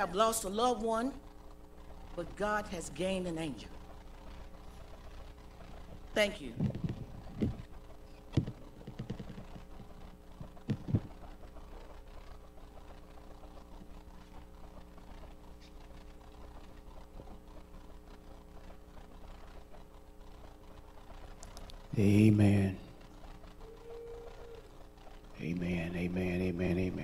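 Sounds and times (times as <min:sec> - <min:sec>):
steady low hum: 0:00.0 - 0:27.0
knocks and thumps: 0:06.6 - 0:07.6, 0:08.3 - 0:11.2.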